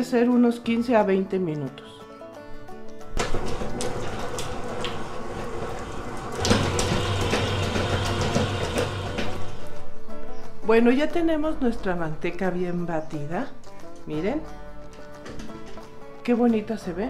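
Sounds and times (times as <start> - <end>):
stand mixer running: 3.2 - 9.6.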